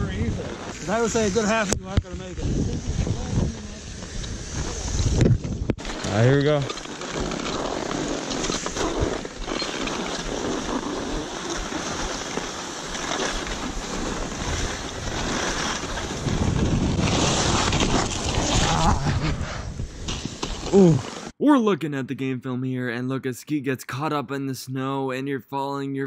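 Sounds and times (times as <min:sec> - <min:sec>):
wind rushing over microphone: 0:00.0 - 0:06.7, 0:13.7 - 0:21.0
skis scraping over snow: 0:00.0 - 0:19.0, 0:19.9 - 0:21.3.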